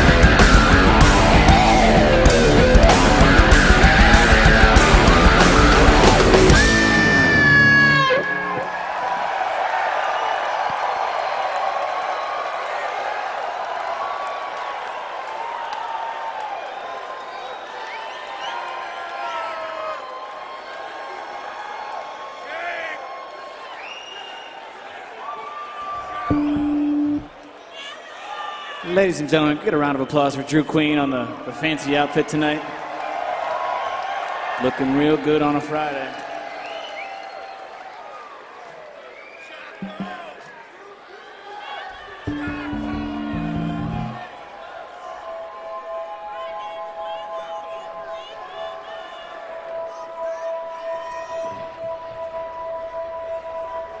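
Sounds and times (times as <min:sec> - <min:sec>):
descending bass run: 0:00.0 - 0:08.0, 0:42.3 - 0:44.2
rock band low closing note: 0:00.0 - 0:08.6, 0:42.3 - 0:44.2
audience cheering and whistling: 0:00.0 - 0:28.8, 0:32.7 - 0:54.0
higher held tone: 0:42.3 - 0:44.2.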